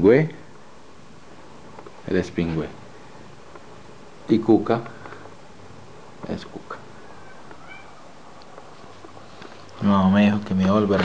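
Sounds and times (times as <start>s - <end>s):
kitten mewing: 7.0s - 8.2s.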